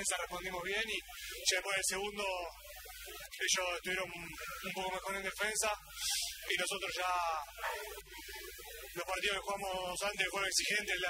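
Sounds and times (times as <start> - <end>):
man speaking: 0.0 - 2.6, 3.4 - 8.0, 9.0 - 11.0
faint scattered sound: 0.0 - 11.0.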